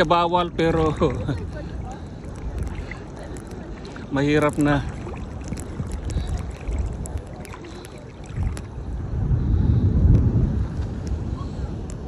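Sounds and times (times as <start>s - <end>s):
sea water sloshing: 0.0s - 9.5s
wind rumbling on microphone: 0.0s - 12.0s.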